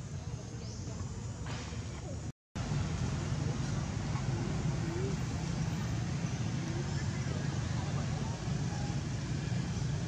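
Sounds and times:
distant indistinct voices: 0.0s - 10.0s
low outdoor rumble: 0.0s - 10.0s.

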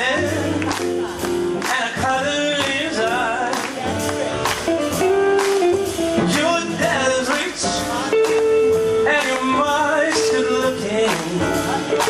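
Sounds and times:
double bass: 0.0s - 12.0s
drums: 0.0s - 12.0s
electric guitar: 0.0s - 12.0s
person singing: 0.0s - 12.0s.

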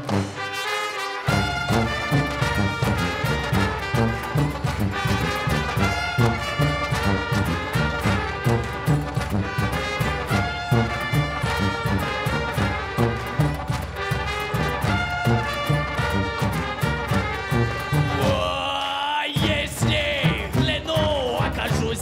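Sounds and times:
band playing fast dance tune: 0.0s - 22.0s
bass drum beat: 1.3s - 18.8s, 19.4s - 22.0s.

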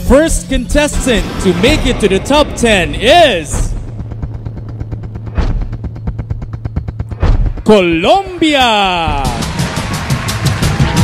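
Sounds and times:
drumroll: 0.7s - 11.0s
low droning note: 0.9s - 7.6s.

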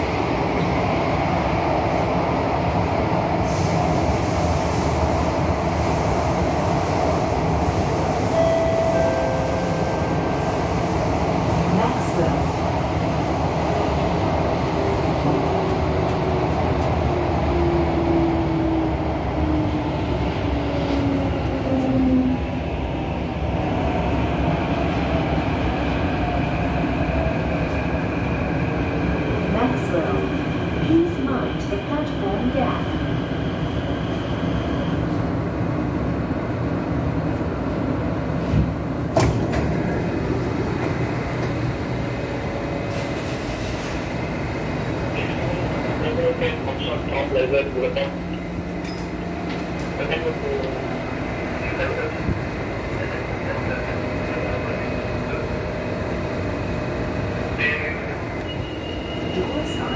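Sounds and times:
train running rumble: 0.0s - 34.3s, 35.0s - 59.9s.

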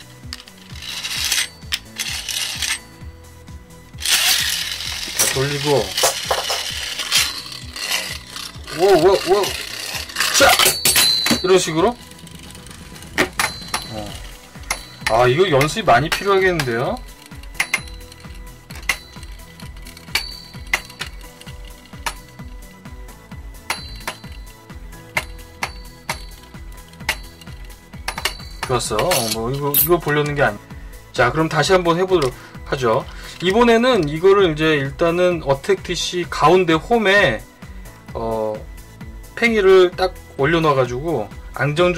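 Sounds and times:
spinning top rattling on plastic: 0.0s - 3.0s, 4.0s - 22.6s, 23.8s - 30.5s
background music: 0.0s - 41.9s.

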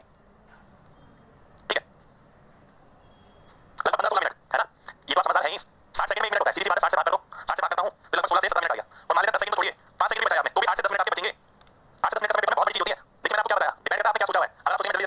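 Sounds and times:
man speaking over phone line: 3.8s - 11.4s, 12.0s - 15.0s.

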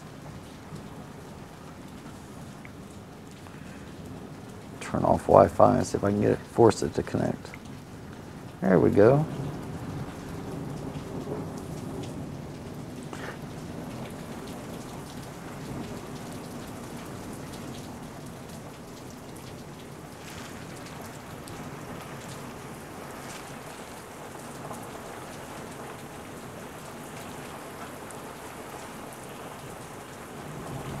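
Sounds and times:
heavy rain: 0.0s - 31.0s
sharp raindrop ticks: 1.6s - 31.0s
thunder rumbling: 30.4s - 31.0s.

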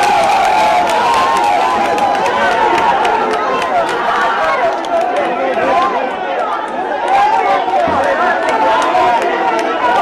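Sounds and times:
crowd of men shouting: 0.0s - 10.0s.

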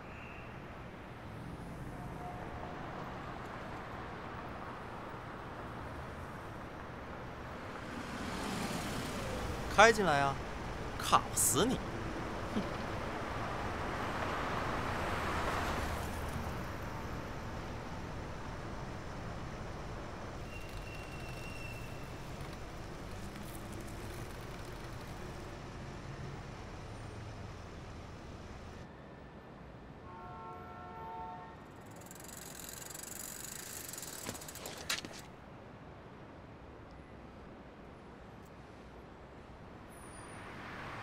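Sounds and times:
car engine and road noise: 0.7s - 28.9s, 39.4s - 41.0s
car horn: 30.1s - 31.7s.

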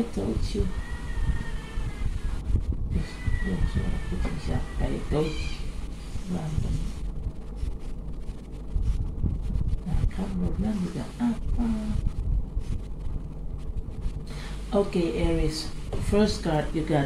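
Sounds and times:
low background rumble: 0.0s - 17.0s
woman murmuring softly: 9.8s - 12.2s.

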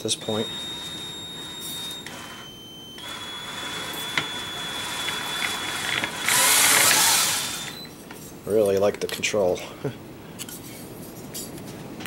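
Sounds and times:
cordless drill motor whining: 0.0s - 7.9s.

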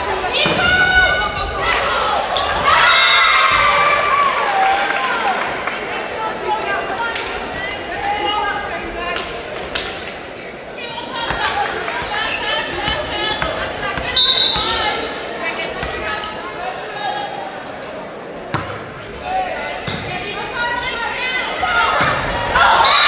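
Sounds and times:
people calling out: 10.8s - 15.3s
volleyball being hit: 18.5s - 18.9s.

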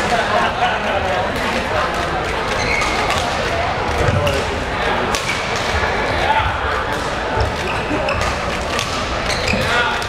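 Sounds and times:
crowd chatter in a hall: 0.0s - 10.0s
racket striking shuttlecock: 8.2s - 9.3s.

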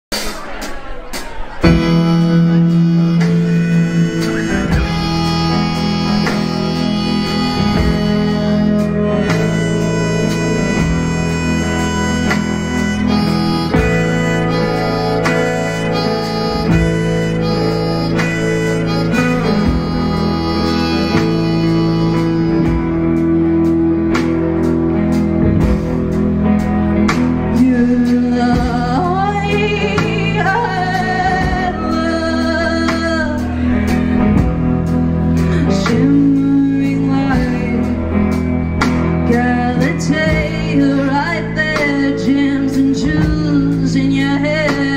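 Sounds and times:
bass guitar: 0.0s - 44.9s
drum kit: 0.0s - 44.9s
live band playing: 0.0s - 44.9s
electric guitars: 0.1s - 44.9s
woman singing lead: 26.5s - 44.9s.

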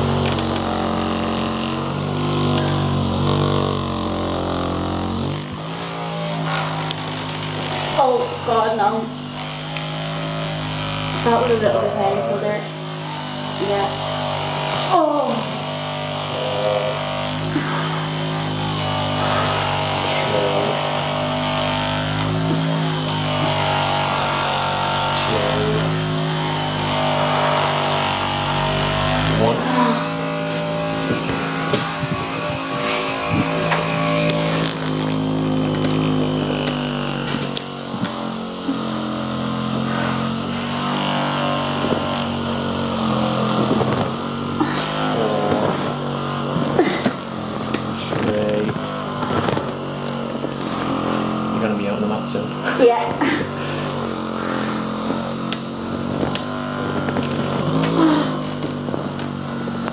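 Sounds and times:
massage gun motor buzz: 0.0s - 59.9s.

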